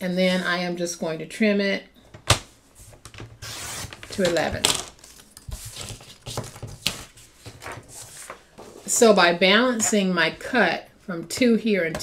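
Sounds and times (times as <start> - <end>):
paper rustling: 2.8 - 8.9.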